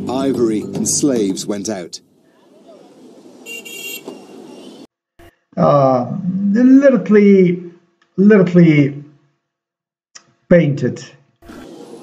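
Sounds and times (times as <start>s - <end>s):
street traffic: 0.0s - 5.3s, 11.4s - 12.0s
short car horn toot: 3.5s - 4.8s.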